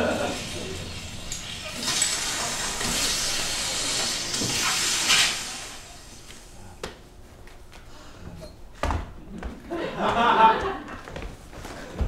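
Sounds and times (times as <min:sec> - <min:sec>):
loud steady hiss: 0:00.0 - 0:06.8.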